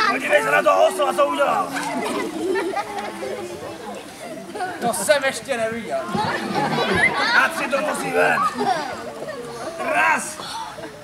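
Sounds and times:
overlapping voices talking: 0:00.0 - 0:11.0.

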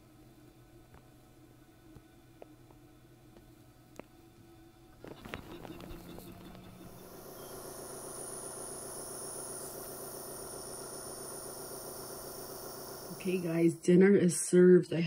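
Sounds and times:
air pulse generator humming: 0:00.0 - 0:14.9.

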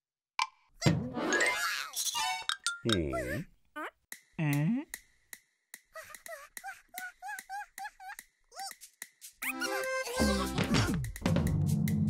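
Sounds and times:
cartoon character squeaky chatter: 0:01.3 - 0:04.0, 0:05.9 - 0:08.8, 0:09.4 - 0:10.5.

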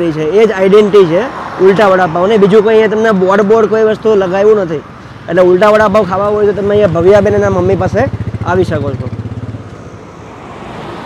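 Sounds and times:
road traffic noise: 0:00.0 - 0:11.0
motorcycle engine running: 0:06.1 - 0:09.7.

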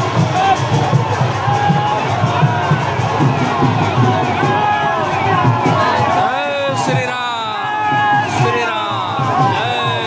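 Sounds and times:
crowd cheering and shouting: 0:00.0 - 0:10.0
music with low beat: 0:00.0 - 0:10.0.

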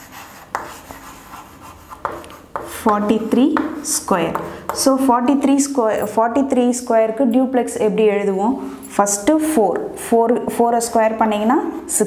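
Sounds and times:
chalk scratching on a chalkboard: 0:00.0 - 0:03.7
chalk tapping on a chalkboard: 0:00.0 - 0:05.0.

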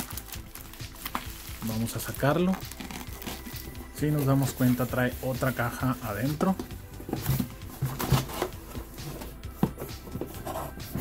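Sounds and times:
cardboard box scraping and knocking: 0:05.5 - 0:11.0.

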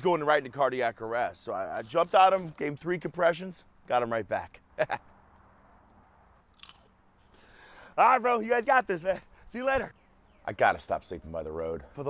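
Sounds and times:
short crunch: 0:05.8 - 0:07.5.

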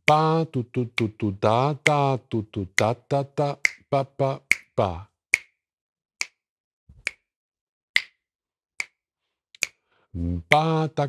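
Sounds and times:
finger snaps: 0:03.6 - 0:03.8, 0:04.5 - 0:04.7, 0:05.4 - 0:05.6, 0:06.2 - 0:07.3, 0:08.0 - 0:08.2, 0:08.8 - 0:09.0, 0:09.6 - 0:09.8.

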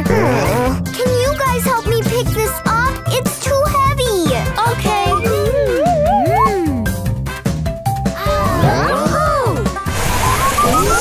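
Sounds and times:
background music: 0:00.0 - 0:11.0
swooping pitch glides: 0:05.0 - 0:07.0.

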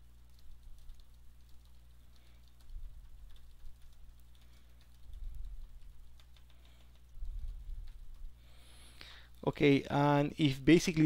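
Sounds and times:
keyboard typing clicks: 0:00.0 - 0:08.4
steady low hum: 0:00.0 - 0:11.0.

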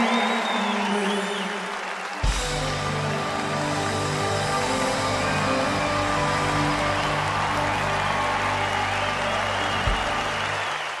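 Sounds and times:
audience applauding: 0:00.0 - 0:11.0
orchestra holding a chord: 0:02.3 - 0:10.8.

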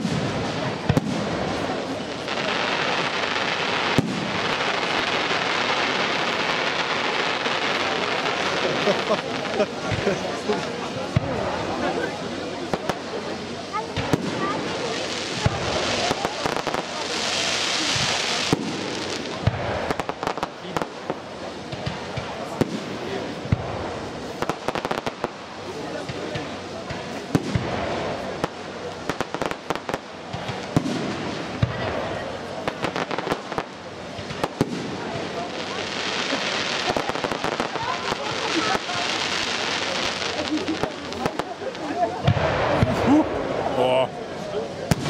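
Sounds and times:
fireworks bursting with sharp bangs: 0:00.0 - 0:45.0.

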